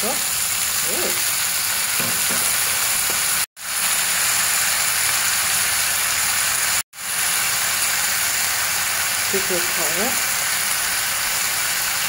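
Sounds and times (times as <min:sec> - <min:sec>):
meat sizzling in a pan: 0:00.0 - 0:12.0.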